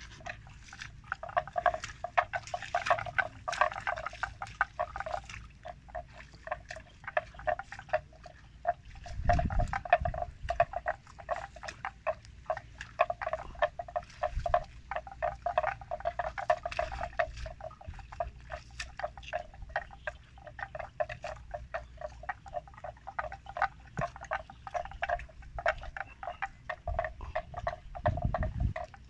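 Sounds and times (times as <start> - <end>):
frogs calling: 0.0 - 29.0.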